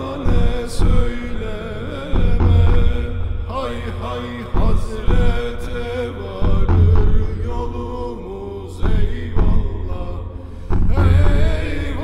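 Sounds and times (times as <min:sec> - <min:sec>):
deep low accompaniment: 0:00.0 - 0:12.0
man singing a hymn: 0:00.0 - 0:12.0.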